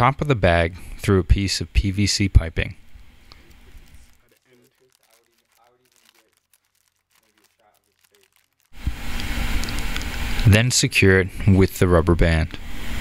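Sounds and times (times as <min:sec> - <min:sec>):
plastic bag crinkling: 0:03.2 - 0:10.4.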